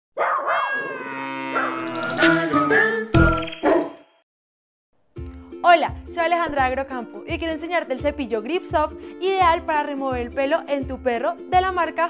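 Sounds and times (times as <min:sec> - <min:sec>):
dog barking: 0:00.2 - 0:00.8, 0:01.5 - 0:01.9, 0:03.7 - 0:04.0.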